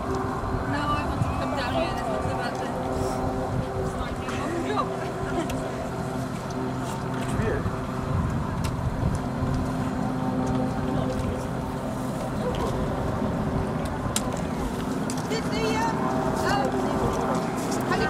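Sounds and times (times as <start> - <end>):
engine drone: 0.0 - 18.0
faint voices: 0.5 - 9.0.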